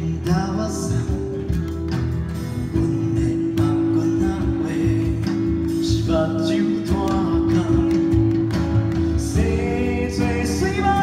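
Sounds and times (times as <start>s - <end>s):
acoustic guitar: 0.0s - 11.0s
person singing: 2.6s - 11.0s.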